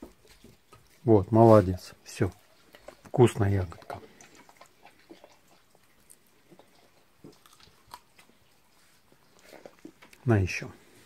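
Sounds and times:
dog chewing: 0.0 - 10.3.

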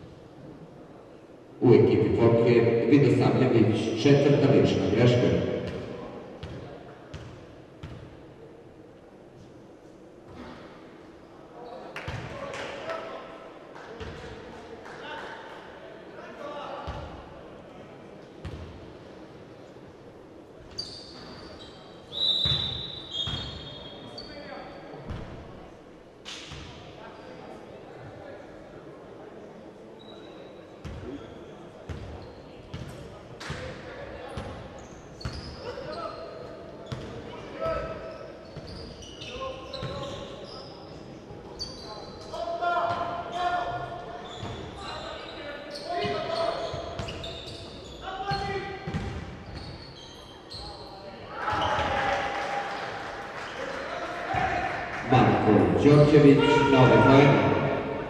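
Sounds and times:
basketball bouncing on wooden court: 48.9 - 49.7
players shouting: 51.3 - 53.0, 53.6 - 58.0.

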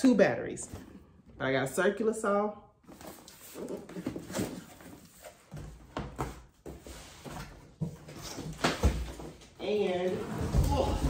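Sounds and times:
cardboard boxes rustling and scraping: 2.9 - 11.0.

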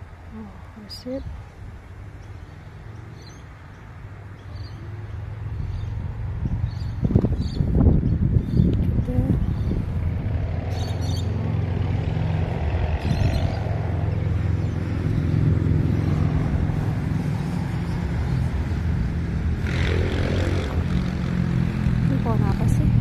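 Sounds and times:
low engine hum: 0.0 - 23.0.

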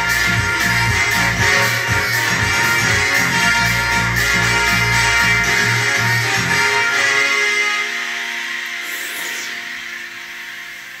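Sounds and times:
synthesizer horn chord: 0.0 - 11.0.

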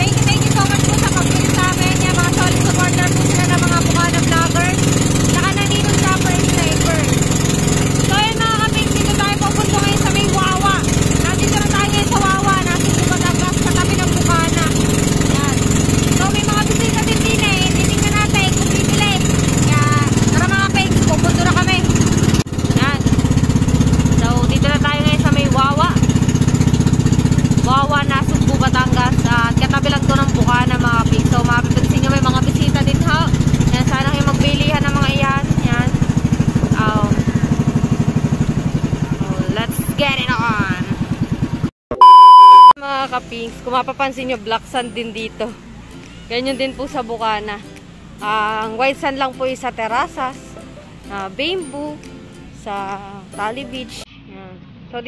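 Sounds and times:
people talking: 0.0 - 7.3, 8.0 - 23.1, 24.2 - 26.0, 27.4 - 36.0, 36.6 - 37.6, 39.0 - 41.0, 42.0 - 45.6, 46.3 - 50.5, 51.1 - 52.0, 52.6 - 55.0
boat motor running: 0.0 - 54.1
loud steady beep: 41.9 - 42.8.

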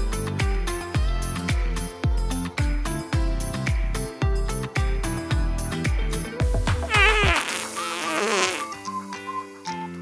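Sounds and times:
background music: 0.0 - 10.0
comic fart sound effect: 6.9 - 8.8.

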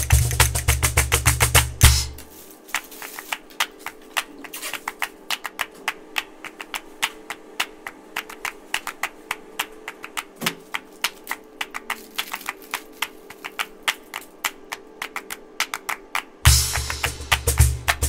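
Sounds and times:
rapid sharp clicks and taps: 0.0 - 18.0.

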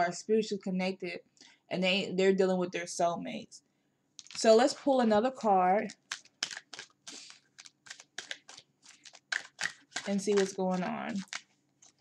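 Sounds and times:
cards being shuffled: 5.9 - 12.0.

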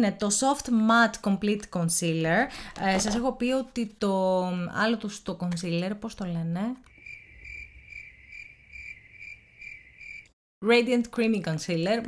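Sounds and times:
crickets chirping: 6.9 - 10.3.

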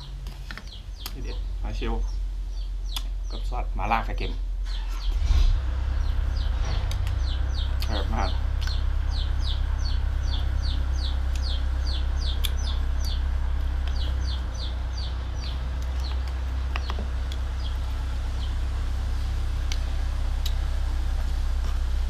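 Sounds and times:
chicks peeping: 0.0 - 18.6
steady low hum: 0.0 - 22.0.

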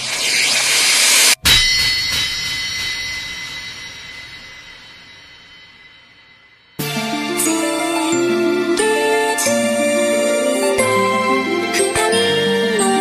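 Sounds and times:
crash with metallic ringing: 1.3 - 7.1
electronic pop song: 6.8 - 13.0.

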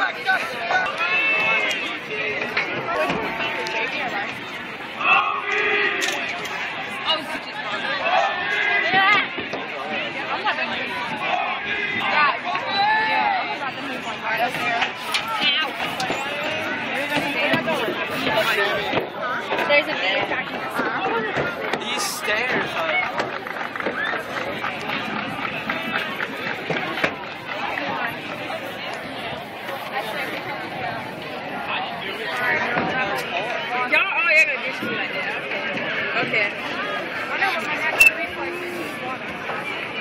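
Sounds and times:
crowd chatter: 0.0 - 40.0.

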